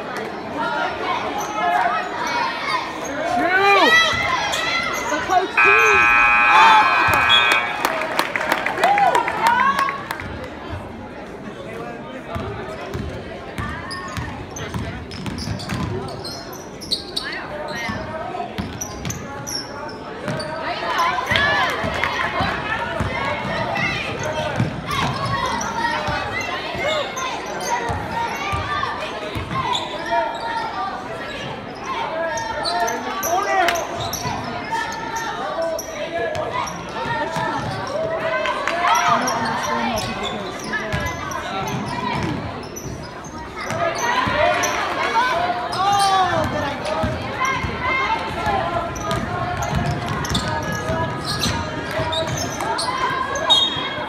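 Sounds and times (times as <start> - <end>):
sneaker squeaks: 4.9 - 8.0, 40.0 - 44.3, 49.0 - 53.9
voices calling out: 5.0 - 9.0.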